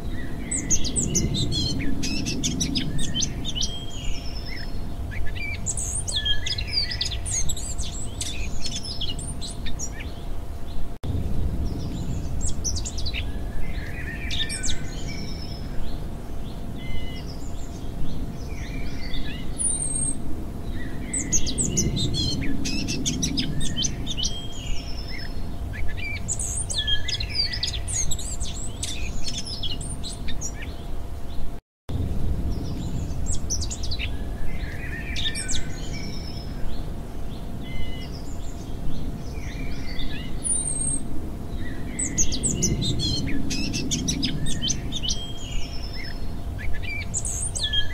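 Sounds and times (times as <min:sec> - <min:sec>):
songbirds chirping and singing: 0:00.0 - 0:11.0, 0:11.6 - 0:31.6, 0:32.5 - 0:47.9
low rumble: 0:00.0 - 0:47.9.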